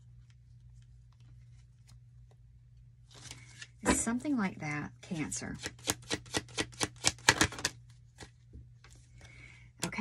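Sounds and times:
cards being shuffled: 5.6s - 9.3s.

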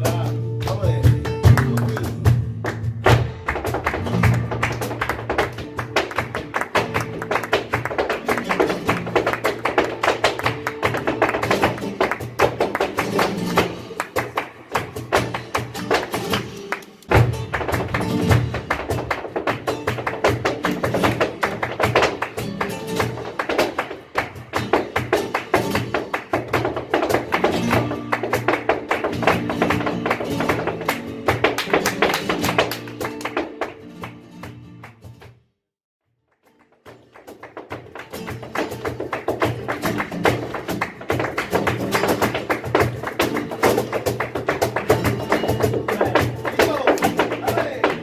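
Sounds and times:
flamenco guitar: 0.0s - 35.4s, 36.3s - 48.0s
hand-clapping: 0.0s - 35.4s, 36.3s - 48.0s
dance footwork strikes: 0.0s - 35.5s, 36.5s - 48.0s.

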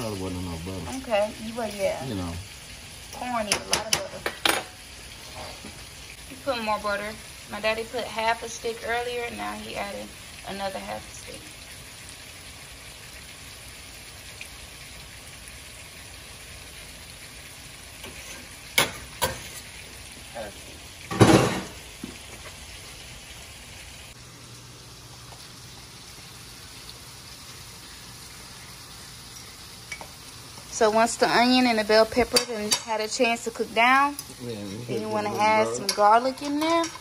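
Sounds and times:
corn sizzling in a skillet: 0.0s - 37.0s.

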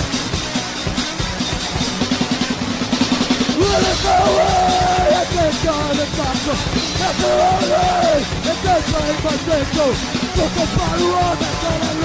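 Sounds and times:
fast drum roll on snare and kick: 0.0s - 12.0s.

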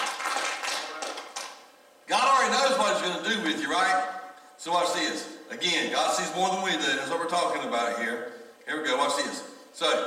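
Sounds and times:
crowd applause: 0.0s - 1.6s.

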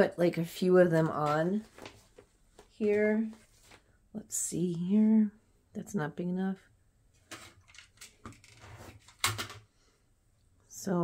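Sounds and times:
fabric rustling: 1.1s - 4.0s.

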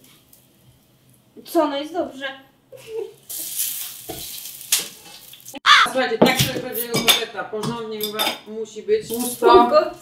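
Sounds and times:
cutlets sizzling in a frying pan: 2.9s - 5.6s
sharp crackle: 3.2s - 5.6s.

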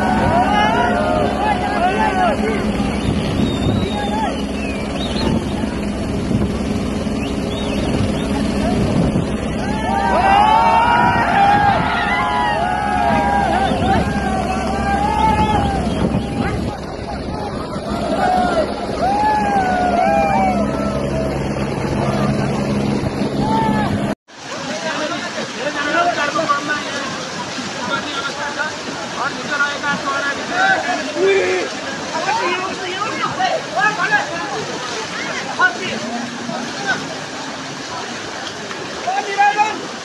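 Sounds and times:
people shouting: 0.0s - 2.8s, 9.6s - 21.5s, 23.4s - 24.0s
helicopter rotor drone: 0.0s - 24.2s.

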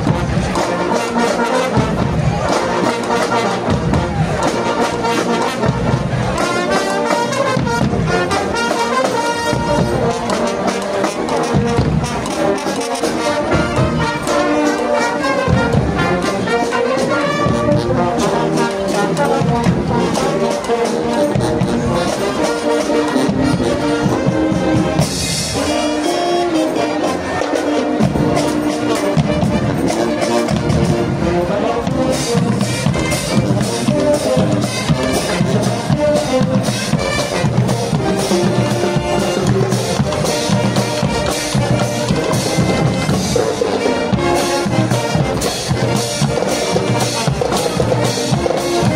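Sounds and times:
brass section playing: 0.0s - 48.9s
marching drums: 0.0s - 48.9s.

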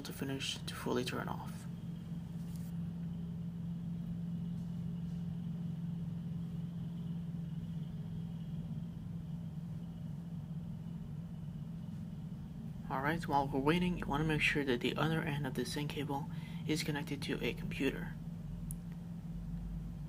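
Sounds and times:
low background hum: 0.0s - 20.0s.

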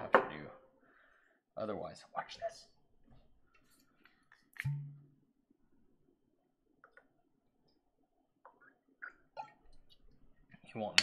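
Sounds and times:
bottle clicking and tapping: 4.6s - 5.1s.

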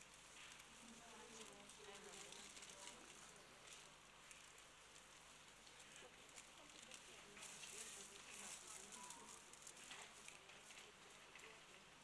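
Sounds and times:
low hiss with fine crackling: 0.0s - 12.0s.

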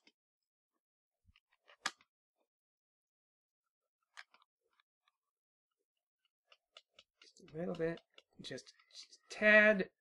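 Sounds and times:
small sharp clicks and taps: 6.2s - 9.2s.

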